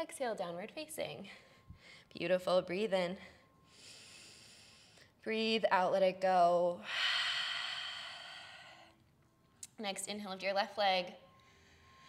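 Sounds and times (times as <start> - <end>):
woman breathing in: 3.4 - 5.2, 6.8 - 9.0.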